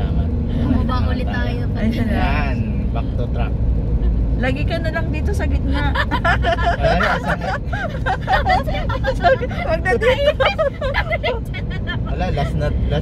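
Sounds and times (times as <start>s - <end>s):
people talking: 0.0s - 3.5s, 4.4s - 13.0s
car road and engine rumble: 0.0s - 13.0s.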